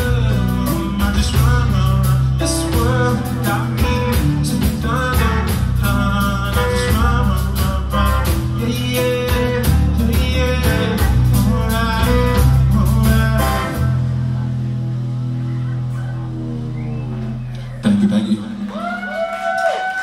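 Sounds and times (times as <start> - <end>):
rock band playing: 0.0 - 19.6.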